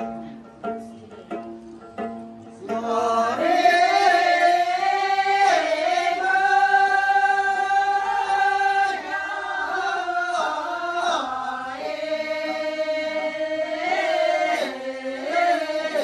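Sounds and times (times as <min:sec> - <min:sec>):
lute playing: 0:00.0 - 0:16.0
group singing folk song: 0:02.1 - 0:16.0.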